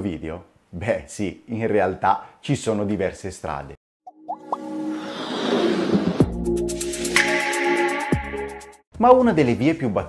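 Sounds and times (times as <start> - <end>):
sustained music tones: 4.1 - 8.8
whoosh: 4.5 - 7.9.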